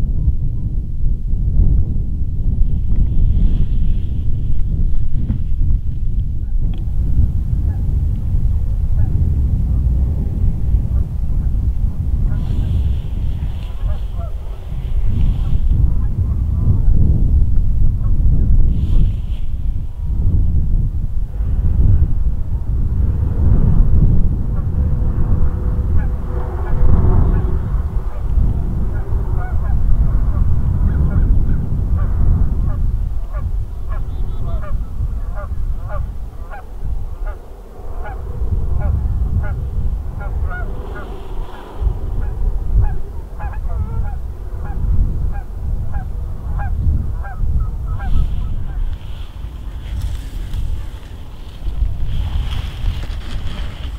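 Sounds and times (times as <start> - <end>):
wind buffeting microphone: 0.0 - 53.9
geese honking: 12.3 - 16.6, 25.8 - 31.4, 32.7 - 38.2, 38.8 - 53.9.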